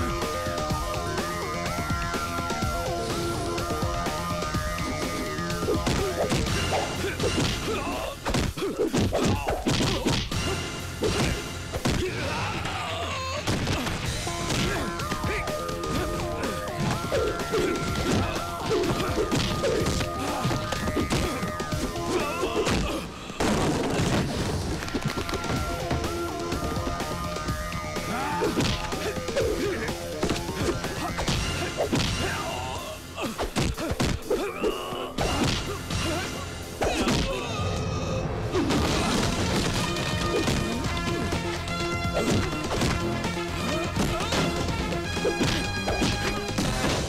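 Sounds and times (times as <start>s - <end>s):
action film music: 0.0s - 47.0s
punch and slap effects: 5.6s - 10.4s, 11.0s - 12.3s, 13.5s - 16.1s, 16.8s - 25.5s, 28.5s - 32.3s, 33.4s - 34.3s, 35.2s - 35.7s, 38.6s - 47.0s
thuds and crashes: 11.0s - 12.2s, 22.7s - 27.0s, 38.6s - 43.3s, 44.0s - 47.0s.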